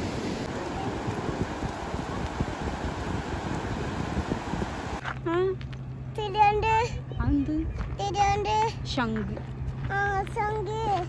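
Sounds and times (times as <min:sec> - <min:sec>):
young child singing: 0:09.8 - 0:11.0.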